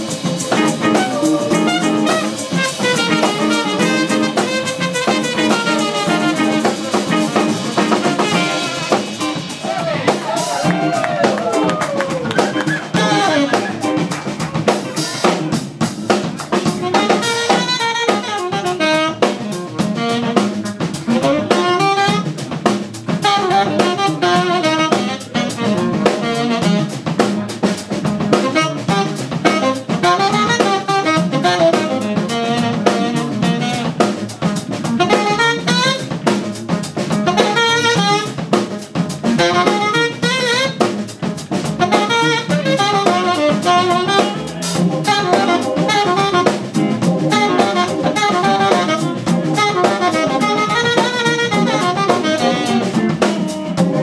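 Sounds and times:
horn melodic solo: 0.0 - 14.0, 16.8 - 20.5, 28.5 - 34.0, 35.0 - 36.2, 37.3 - 38.4, 39.4 - 40.9, 41.8 - 54.0
drum kit: 0.0 - 54.0
electric bass: 0.0 - 54.0
electric guitar: 0.0 - 54.0.

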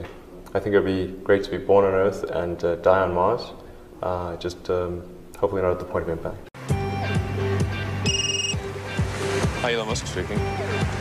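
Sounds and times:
background music with steady beat: 6.6 - 11.0
telephone ringing trill: 8.1 - 8.6.

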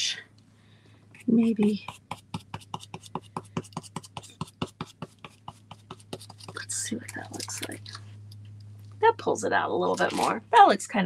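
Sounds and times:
steady low hum: 0.0 - 11.0
stencil brush dabbing paint: 1.1 - 8.2, 9.9 - 10.4.

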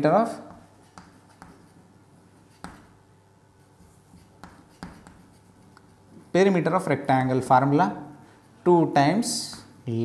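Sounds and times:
chalk scratching on chalkboard: 0.3 - 1.8, 2.4 - 3.0, 3.6 - 6.1
chalk tapping: 0.3 - 1.8, 2.4 - 3.0, 3.6 - 6.2, 9.3 - 9.9.

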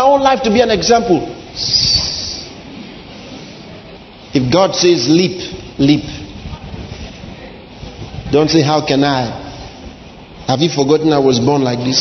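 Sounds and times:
low room background noise: 0.0 - 12.0
hiss: 1.4 - 11.0.

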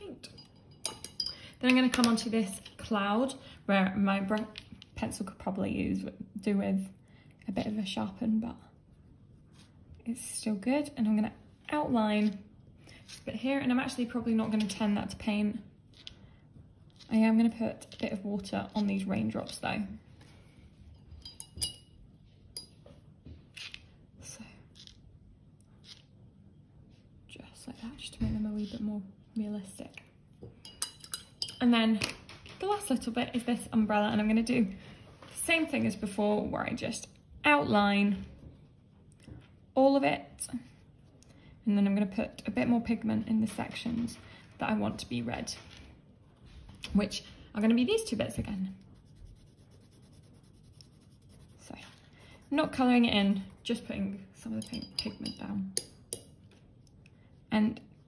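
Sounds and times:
paintbrush clinking glass jar: 0.2 - 1.4, 21.0 - 22.0, 30.6 - 31.6, 54.6 - 56.2
pencil scratching on paper: 48.8 - 52.9.

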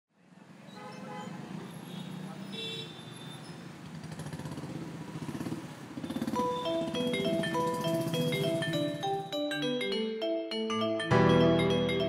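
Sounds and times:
motor traffic: 0.2 - 9.4.

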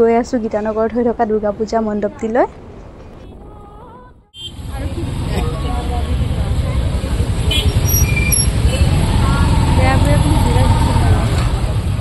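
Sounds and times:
traffic engines rumbling: 0.0 - 12.0
crowd voices: 3.0 - 12.0.

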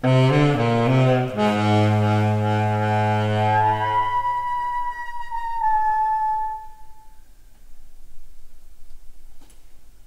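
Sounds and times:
tenor saxophone low note: 0.0 - 7.2
higher held instrument note: 0.0 - 7.3.

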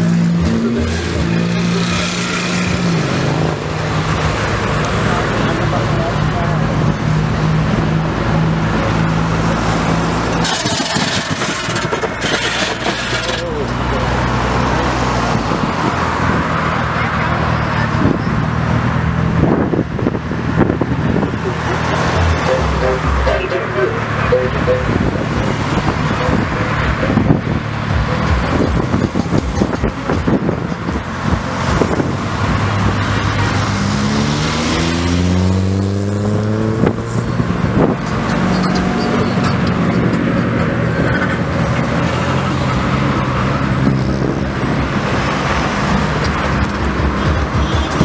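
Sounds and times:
car engines passing: 0.0 - 48.0
road noise: 0.0 - 48.0.

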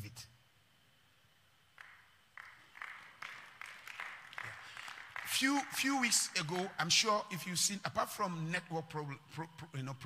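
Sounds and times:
hand claps: 1.8 - 7.2.

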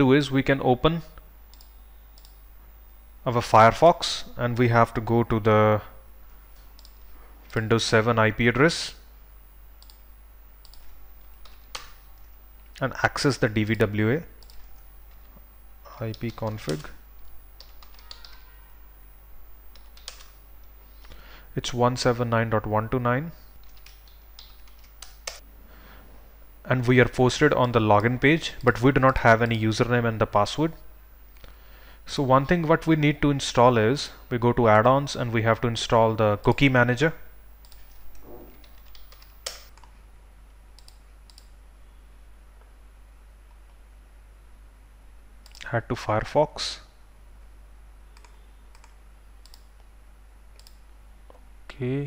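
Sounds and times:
faint steady hum: 0.0 - 52.0
faint keyboard typing: 1.5 - 2.5, 4.3 - 4.8, 6.3 - 7.6, 9.8 - 13.0, 14.3 - 18.7, 19.7 - 21.2, 23.4 - 25.4, 27.5 - 29.6, 37.6 - 40.0, 40.8 - 41.6, 48.1 - 49.9, 50.5 - 51.8.

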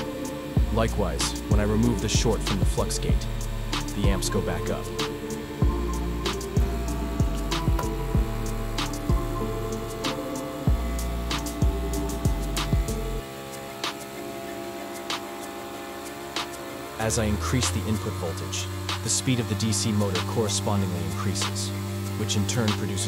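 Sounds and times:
bass line: 0.0 - 13.2, 17.0 - 23.0
background music with beat: 0.0 - 23.0.

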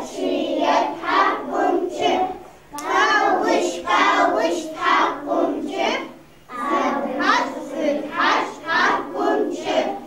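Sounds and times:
children singing in unison: 0.0 - 10.0.

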